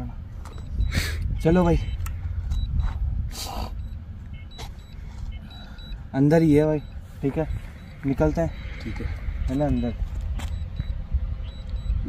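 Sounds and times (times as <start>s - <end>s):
wind buffeting microphone: 0.5s - 6.1s, 6.8s - 12.0s.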